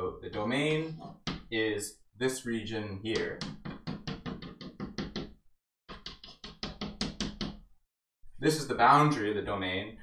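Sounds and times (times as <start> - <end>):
chalk tapping on a blackboard: 3.1 - 7.6.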